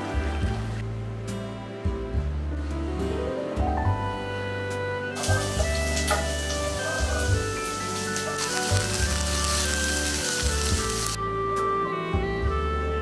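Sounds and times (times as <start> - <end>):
onions sizzling in hot oil: 5.2 - 11.2.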